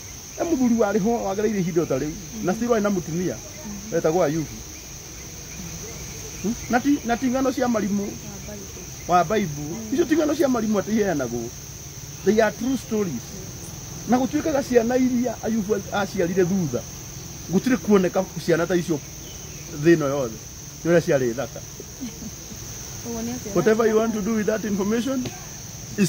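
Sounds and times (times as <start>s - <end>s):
crickets chirring: 0.0s - 26.0s
two people talking: 0.4s - 26.0s.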